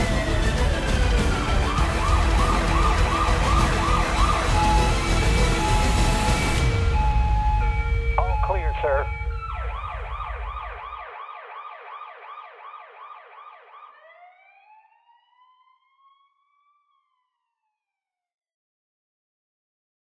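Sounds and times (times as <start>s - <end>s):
siren yelping: 0.1s - 17.1s.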